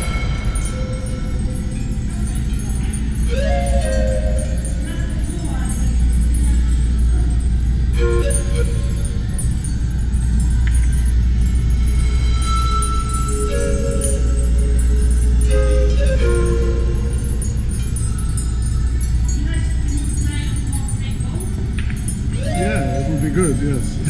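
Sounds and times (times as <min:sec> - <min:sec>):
crowd chatter: 0:00.0 - 0:24.0
steady low hum: 0:00.0 - 0:24.0
background music: 0:07.9 - 0:19.8.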